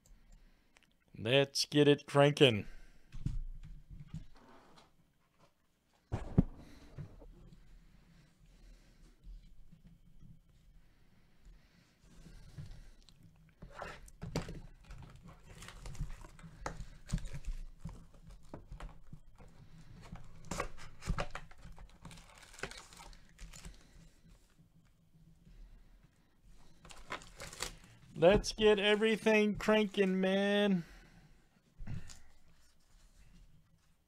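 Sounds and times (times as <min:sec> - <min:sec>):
plastic wrap tearing and crinkling: 0:20.4 - 0:23.8, 0:26.9 - 0:27.9.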